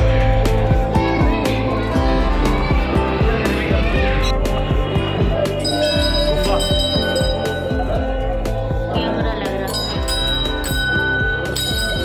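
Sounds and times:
small brass bell ringing: 5.6 - 8.1, 9.7 - 12.0.

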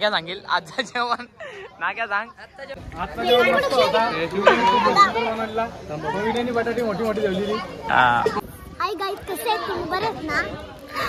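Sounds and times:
children talking and calling out: 2.4 - 11.0.

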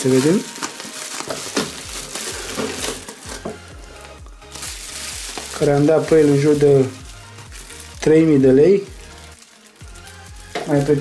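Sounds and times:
bubble wrap crinkling: 0.0 - 11.0.

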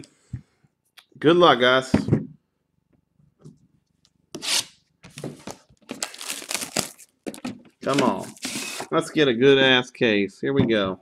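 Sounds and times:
plastic wrapping tearing and crinkling: 5.5 - 8.9.

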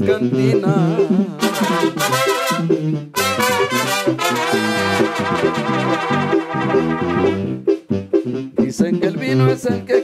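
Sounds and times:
person singing: 0.0 - 2.6, 8.6 - 10.0
keyboard with bass line: 0.0 - 10.0
trumpets and trombone: 1.4 - 7.6.

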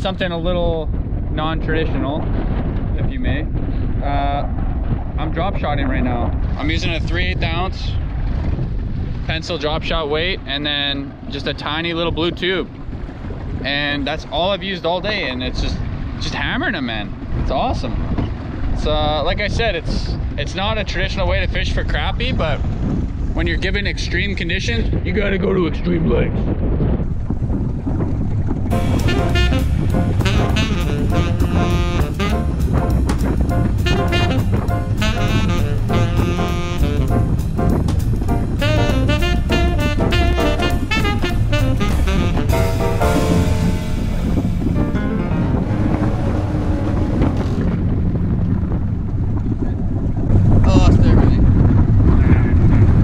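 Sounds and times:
wind buffeting microphone: 0.0 - 53.0
jazzy music with brass: 28.7 - 49.6.

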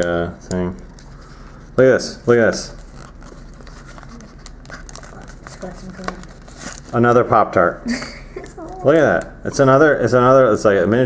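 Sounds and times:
foil packaging crinkling and tearing: 2.3 - 7.2.

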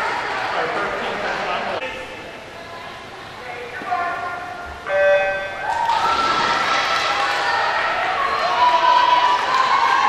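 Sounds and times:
crowd cheering: 5.6 - 10.0.

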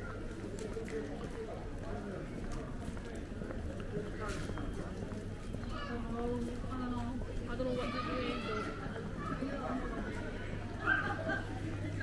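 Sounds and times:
voices of passersby: 0.0 - 12.0.

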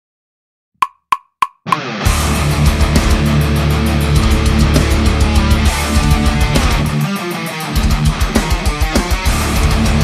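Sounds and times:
metronome clicks: 0.8 - 1.9
heavy metal music: 1.7 - 10.0.

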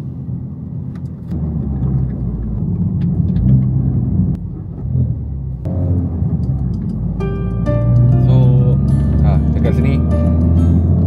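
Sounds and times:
car engine running: 0.0 - 11.0
road rumble: 0.0 - 11.0.

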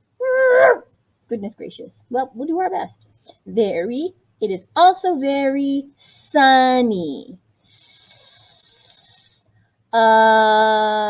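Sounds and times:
woman making hissing sss sound: 7.6 - 9.4.

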